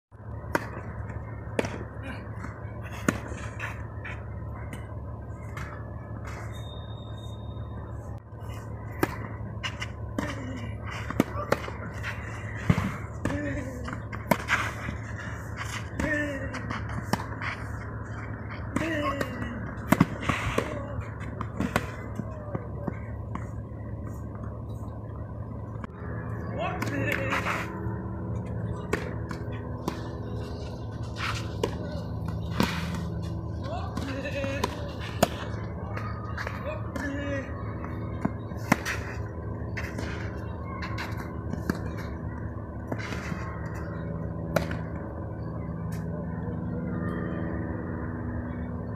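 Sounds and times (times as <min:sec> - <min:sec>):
steady low hum: 0:00.1 - 0:48.9.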